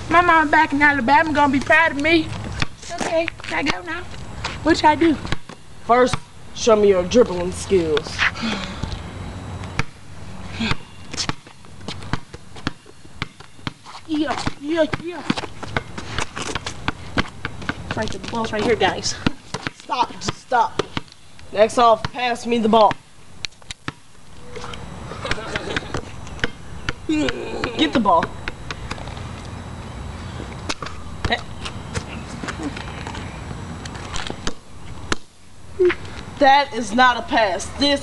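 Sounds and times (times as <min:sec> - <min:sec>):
rubber ball bouncing on concrete: 0:10.6 - 0:21.2, 0:25.3 - 0:29.0, 0:30.7 - 0:31.7
sneaker footsteps on concrete: 0:10.9 - 0:21.2.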